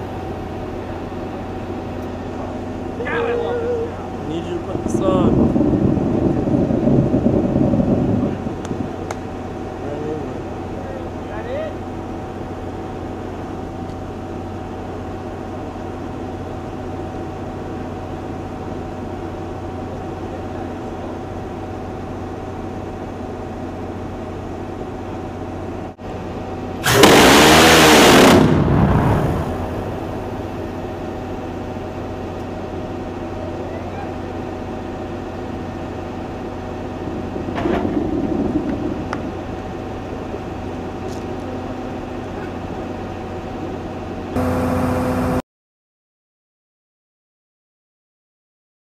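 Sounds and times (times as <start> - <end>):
machinery hum: 0.0 - 45.4
rotary cannon burst: 26.8 - 30.8, 36.9 - 40.1.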